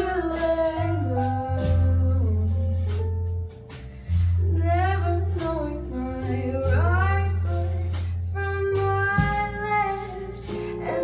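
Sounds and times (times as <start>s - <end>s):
woman singing with vibrato: 0.0s - 2.8s, 4.4s - 11.0s
jazz band playing: 0.0s - 11.0s.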